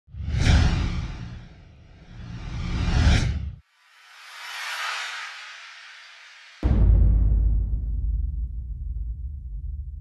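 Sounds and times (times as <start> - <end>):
whoosh sound effect: 0.2 - 6.7.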